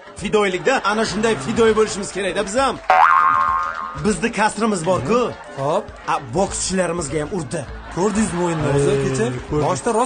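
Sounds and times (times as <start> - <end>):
comedy rising tone effect: 2.9 - 4.2.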